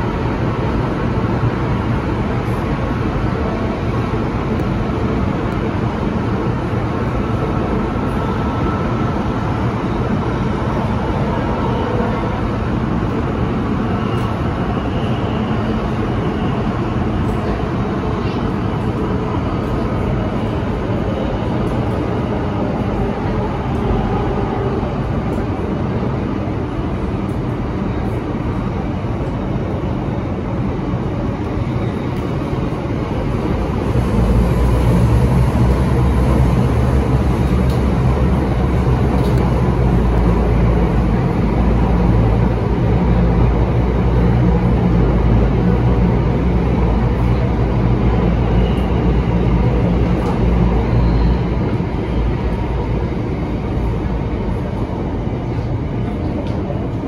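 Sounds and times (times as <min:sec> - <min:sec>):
metro car wheels rumbling: 0:00.0 - 0:57.0.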